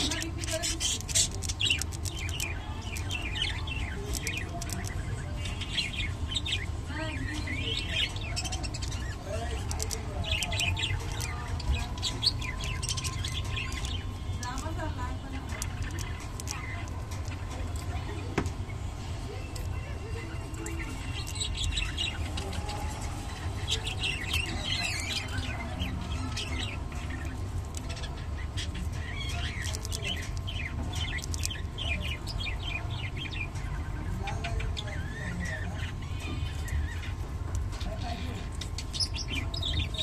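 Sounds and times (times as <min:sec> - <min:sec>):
budgerigars chirping and chattering: 0:00.0 - 0:40.0.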